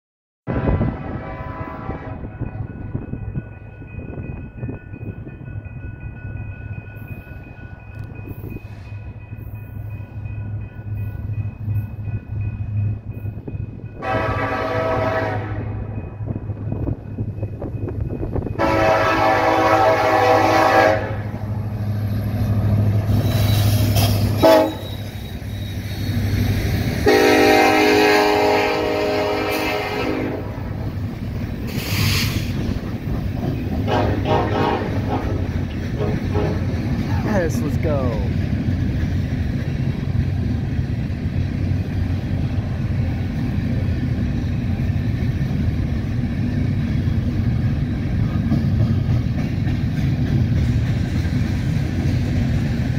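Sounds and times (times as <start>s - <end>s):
train air horn blasts: 0.5s - 2.4s, 14.0s - 15.9s, 18.6s - 21.4s, 24.4s - 25.1s, 27.0s - 30.5s, 33.9s - 36.7s
diesel locomotive engines droning: 0.5s - 52.9s
train wheel noise: 1.2s - 52.9s.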